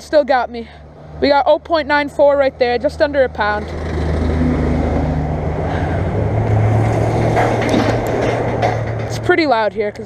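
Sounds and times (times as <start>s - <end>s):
vehicle engine hum: 0.0s - 10.0s.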